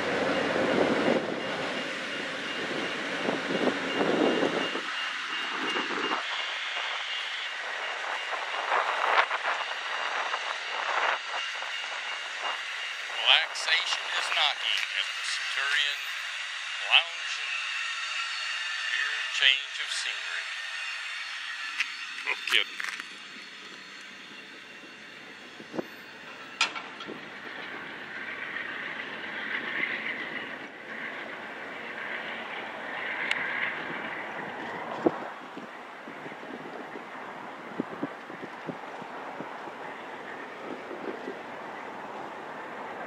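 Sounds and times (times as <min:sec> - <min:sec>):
train wheels rumbling on rail: 0:00.0 - 0:43.0.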